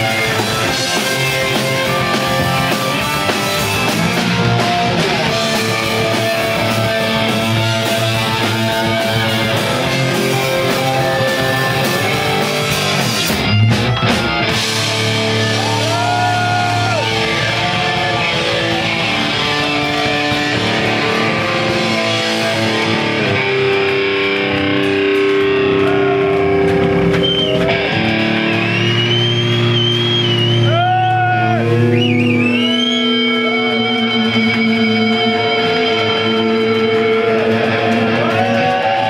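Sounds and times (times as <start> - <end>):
distorted electric guitars: 0.0 - 39.0
guitar feedback wavering tone: 14.5 - 38.4.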